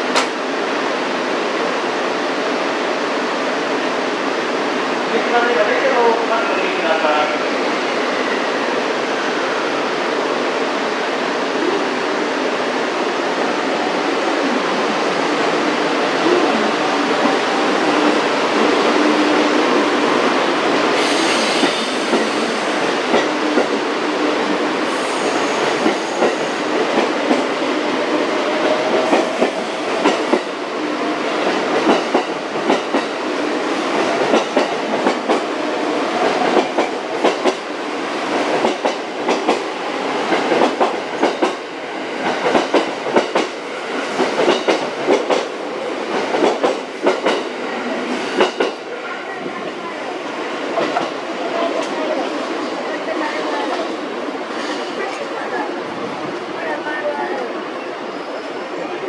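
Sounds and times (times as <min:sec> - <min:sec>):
train rolling rumble: 0:01.3 - 0:59.0.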